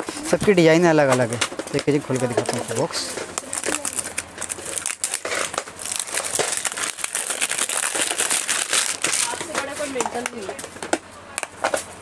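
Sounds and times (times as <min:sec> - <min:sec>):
plastic packaging crinkling: 0:01.8 - 0:10.1.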